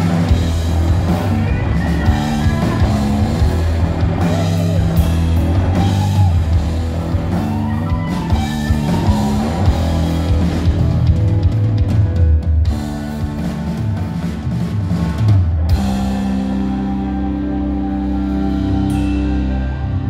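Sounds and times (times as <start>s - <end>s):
rock band playing: 0.0s - 20.0s
sliding electric guitar lines: 0.0s - 20.0s.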